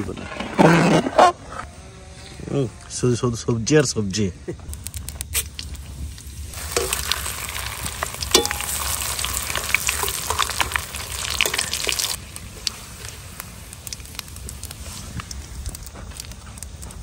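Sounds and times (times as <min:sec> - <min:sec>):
spices sizzling in hot oil: 0:04.7 - 0:16.3.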